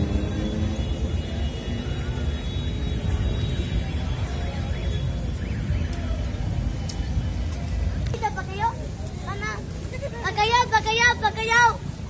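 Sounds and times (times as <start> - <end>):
cars and buses passing: 0.0 - 12.0
city traffic rumble: 0.0 - 12.0.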